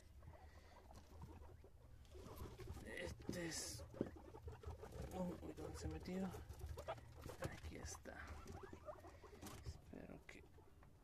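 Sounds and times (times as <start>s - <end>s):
guinea pigs rustling on grass: 0.0s - 11.0s.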